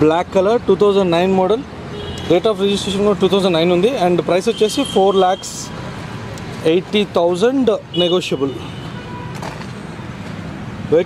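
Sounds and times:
outdoor ambience hiss and rumble: 0:00.0 - 0:11.0.

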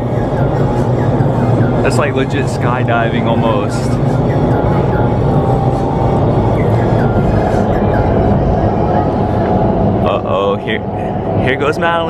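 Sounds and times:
wind tunnel airflow rushing: 0:00.0 - 0:12.0.

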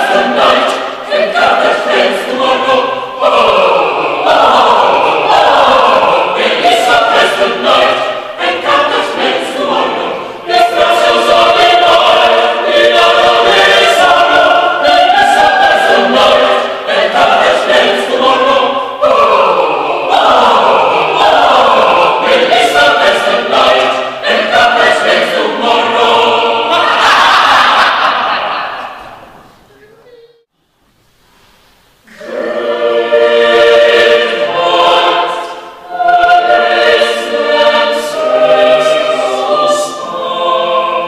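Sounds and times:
choir singing: 0:00.0 - 0:29.5, 0:32.0 - 0:41.0.

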